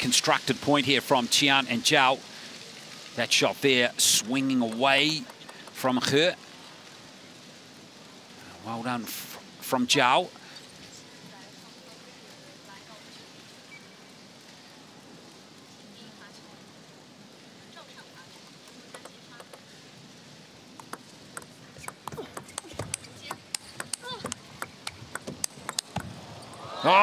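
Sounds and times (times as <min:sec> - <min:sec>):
table tennis ball clicking: 0:04.7 - 0:05.8, 0:20.8 - 0:26.6.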